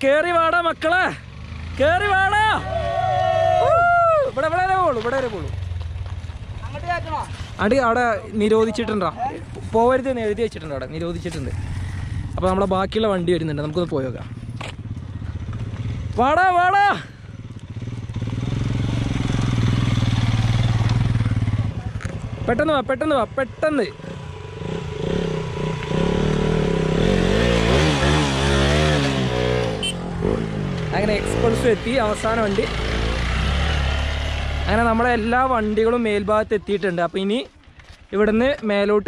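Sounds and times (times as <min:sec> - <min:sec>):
motorcycle engine hum: 0:00.3 - 0:38.8.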